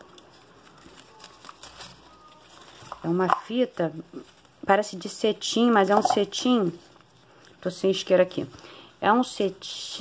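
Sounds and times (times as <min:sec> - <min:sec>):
ribbon rustling and clicking: 0:00.0 - 0:07.6.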